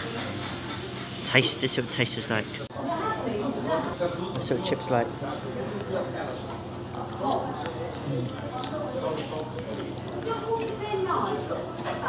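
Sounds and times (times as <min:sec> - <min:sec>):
people talking: 0:01.2 - 0:12.0.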